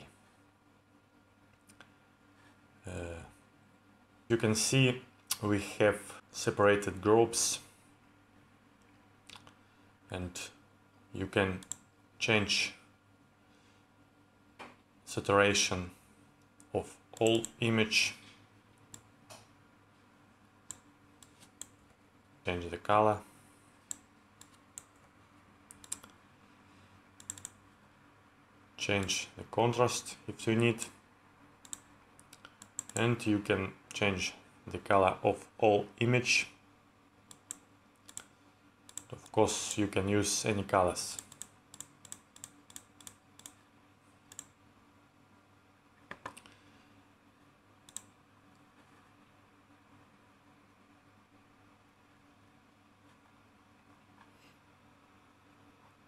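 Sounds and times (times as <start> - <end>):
faint low steady hum: 0.0 - 56.0
faint computer mouse clicks: 25.7 - 26.2, 27.2 - 27.6, 31.6 - 33.0, 37.3 - 38.3, 38.9 - 39.3, 41.2 - 43.6, 44.3 - 44.5, 47.9 - 48.1.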